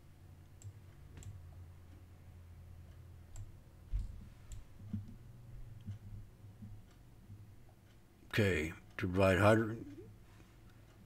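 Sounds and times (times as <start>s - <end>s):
low steady hum: 0.0s - 11.0s
computer mouse clicks: 0.5s - 1.4s, 4.5s - 7.0s.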